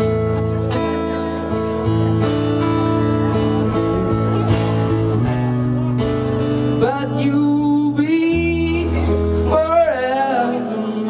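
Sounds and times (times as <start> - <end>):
electric guitar chords: 0.0 - 11.0
rock band playing: 0.0 - 11.0
person singing: 0.8 - 11.0.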